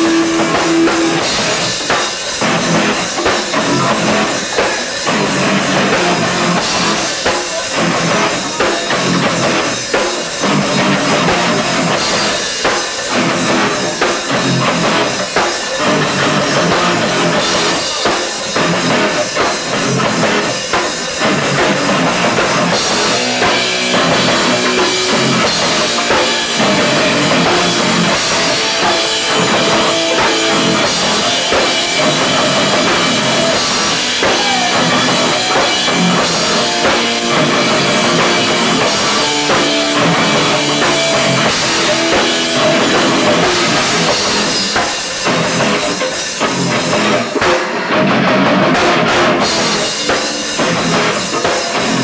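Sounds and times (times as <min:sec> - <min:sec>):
drum kit: 0:00.0 - 0:52.0
electric guitar: 0:00.0 - 0:52.0
punk band playing live: 0:00.0 - 0:52.0.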